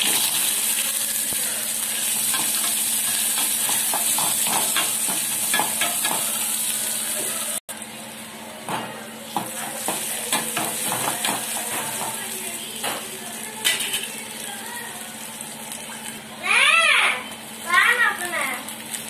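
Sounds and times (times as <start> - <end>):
onions sizzling in hot oil: 0.0 - 19.0.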